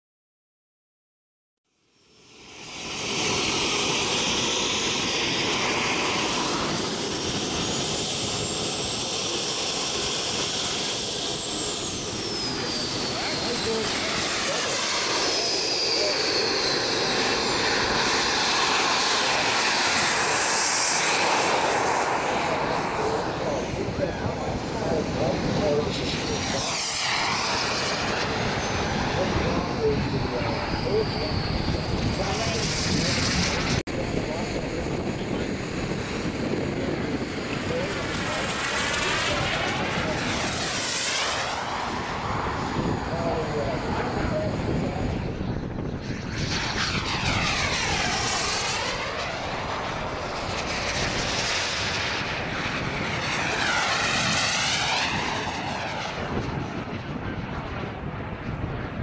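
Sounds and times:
model jet turbine roar: 0:01.7 - 0:59.0
turbine high-pitched whine: 0:01.8 - 0:59.0.

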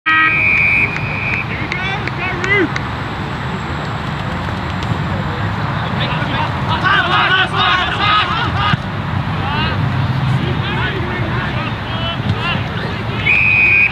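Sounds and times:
people shouting: 0:06.7 - 0:09.8.

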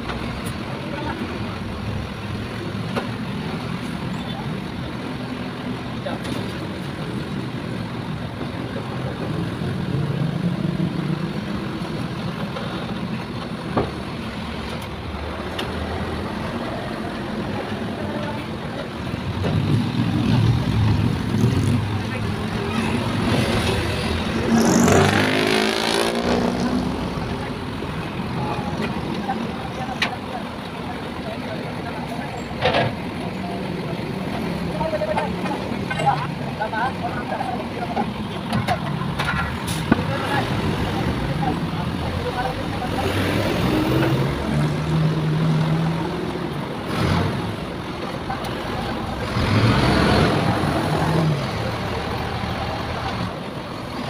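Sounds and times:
diesel truck engine running: 0:00.0 - 0:54.0
vehicles passing: 0:00.0 - 0:54.0.

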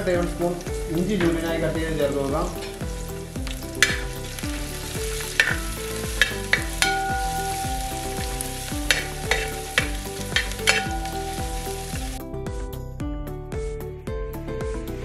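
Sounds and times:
garlic and ginger sizzling in oil: 0:00.0 - 0:12.2
ladle clinking against pan: 0:08.9 - 0:11.8.

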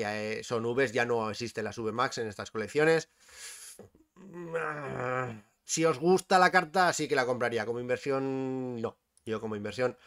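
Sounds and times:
man breathing: 0:03.1 - 0:04.0.

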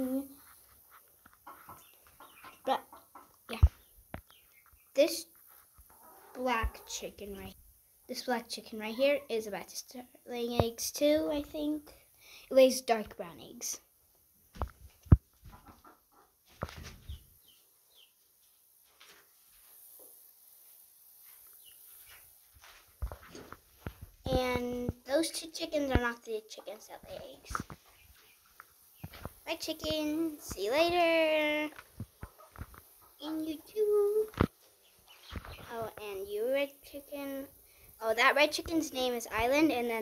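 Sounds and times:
chickens clucking: 0:00.0 - 0:04.8, 0:05.8 - 0:07.5, 0:15.0 - 0:17.6, 0:26.8 - 0:36.3
knocks and rustling: 0:16.4 - 0:17.2, 0:22.6 - 0:24.4.

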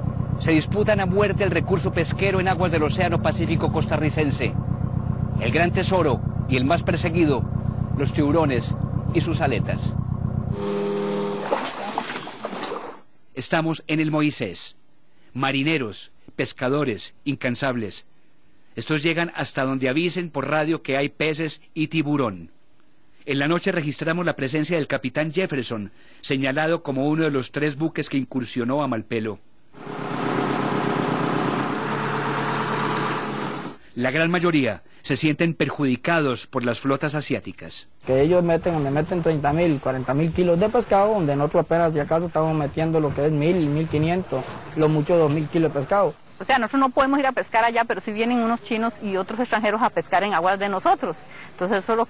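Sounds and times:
boat engine running: 0:00.0 - 0:13.0, 0:29.8 - 0:33.8.

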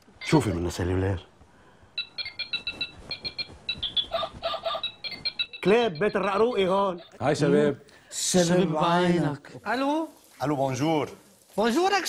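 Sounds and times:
phone ringtone rapid beeps: 0:02.0 - 0:07.5.

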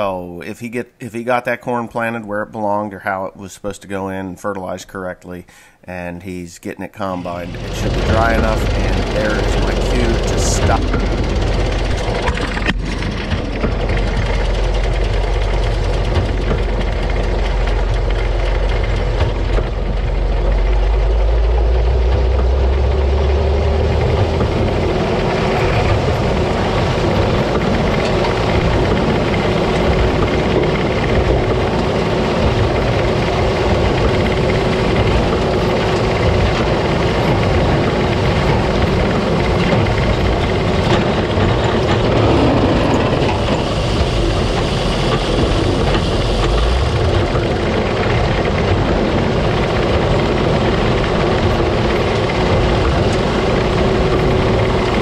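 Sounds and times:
baler mechanical din: 0:07.0 - 0:55.0
deep engine drone: 0:07.0 - 0:55.0.

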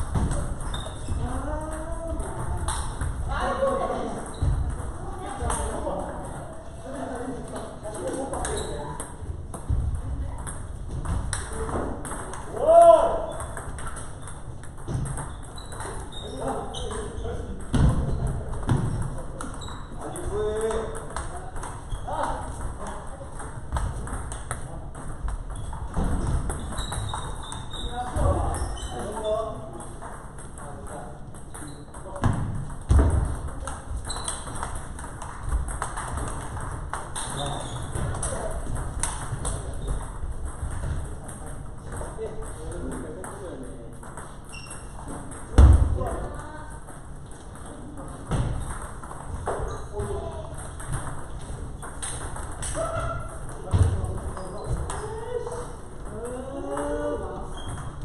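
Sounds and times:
table tennis balls clicking: 0:00.0 - 0:58.0.

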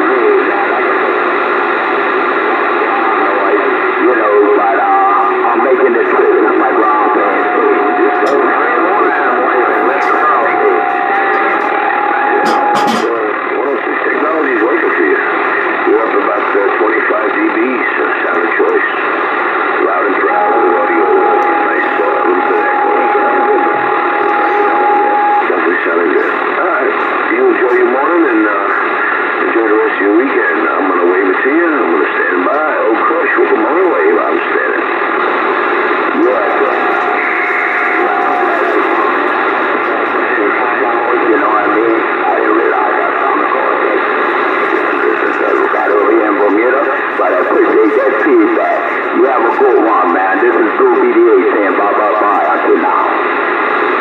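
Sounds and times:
garbled radio voices: 0:00.0 - 0:54.0
radio static: 0:00.0 - 0:54.0
steady whistle tone: 0:02.8 - 0:13.2, 0:20.1 - 0:27.2, 0:36.2 - 0:43.1.

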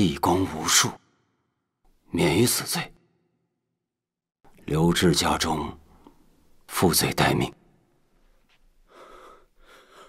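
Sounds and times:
man breathing: 0:08.8 - 0:10.0.

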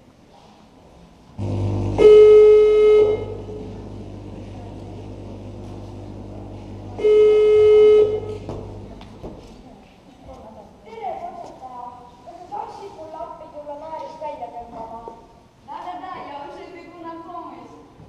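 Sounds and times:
loud horn blasts: 0:01.4 - 0:09.3
low rumble: 0:01.4 - 0:09.5.

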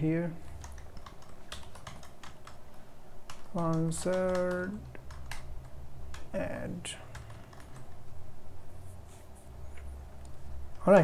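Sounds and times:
keyboard typing: 0:00.4 - 0:06.3, 0:07.1 - 0:08.2
man's voice on one pitch: 0:03.5 - 0:04.8, 0:06.3 - 0:07.1, 0:10.8 - 0:11.0.

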